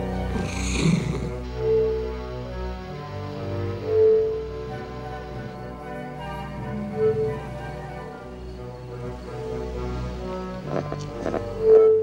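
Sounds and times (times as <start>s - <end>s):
orchestral film score: 0.0s - 12.0s.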